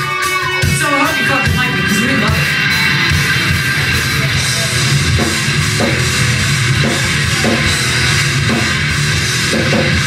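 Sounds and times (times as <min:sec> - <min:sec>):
bass guitar: 0:00.0 - 0:10.0
drum kit with cymbals: 0:00.0 - 0:10.0
electric guitars: 0:00.0 - 0:10.0.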